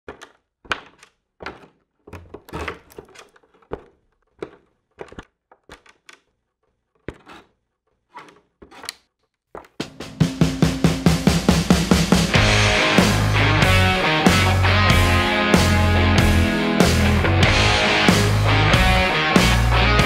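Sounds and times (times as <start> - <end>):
rock band playing: 9.8 - 20.0.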